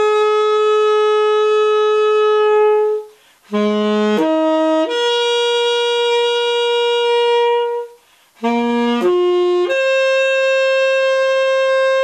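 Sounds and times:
tenor saxophone long high note: 0.0s - 12.0s.

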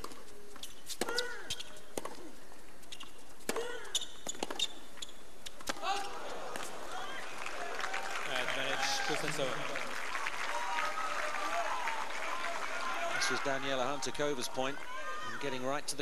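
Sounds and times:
racket hitting tennis ball: 0.0s - 2.3s, 3.4s - 4.8s
crowd noise: 5.6s - 16.0s.

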